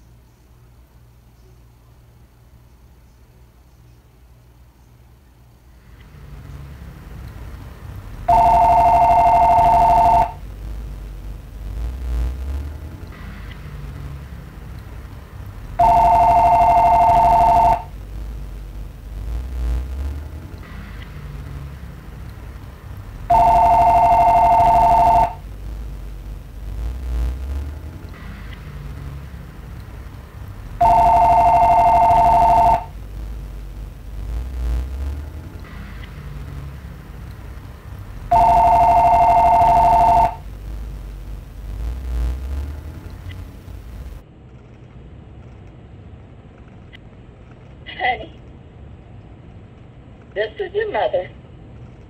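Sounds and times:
low background rumble: 0.0 - 52.0
telephone ringing: 8.3 - 10.4, 15.8 - 17.9, 23.3 - 25.4, 30.8 - 32.9, 38.3 - 40.4.

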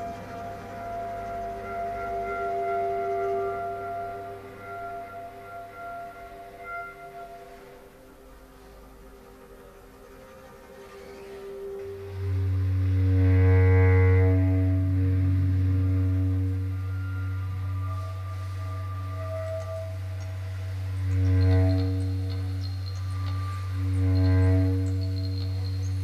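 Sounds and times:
low drone with overtones: 0.0 - 26.0.

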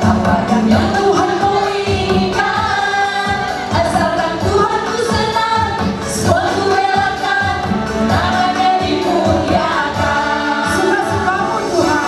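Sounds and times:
accompaniment with steady beat: 0.0 - 12.0
women's vocal group singing: 0.0 - 12.0.

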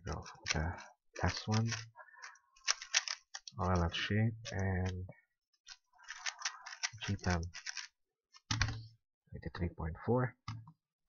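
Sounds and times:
plastic puzzle cube clicking: 1.2 - 1.9, 2.6 - 3.6, 5.7 - 8.8.

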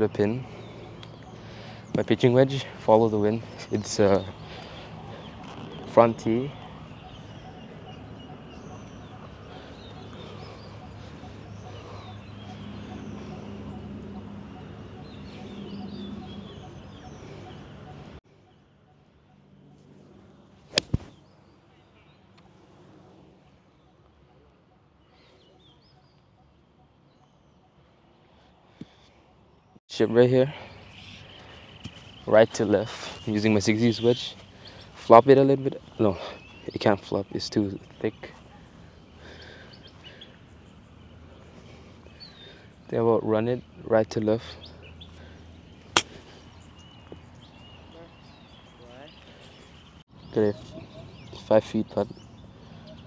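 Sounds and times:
faint bird chirps: 3.5 - 29.8
golf club striking ball: 20.7 - 21.1, 45.9 - 46.3.

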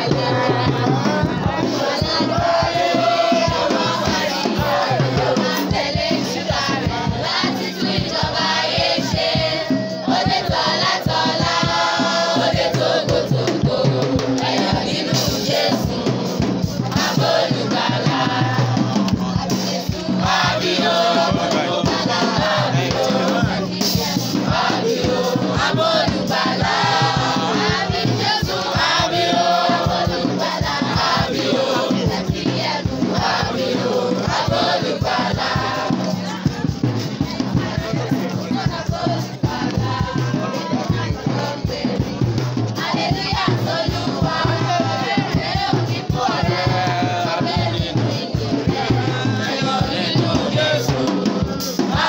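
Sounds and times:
children's choir singing: 0.0 - 52.0
steady percussive beat: 0.0 - 52.0.

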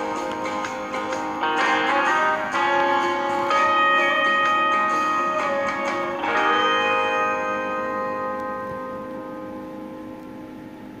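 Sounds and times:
strummed guitar chord ringing: 0.0 - 11.0.

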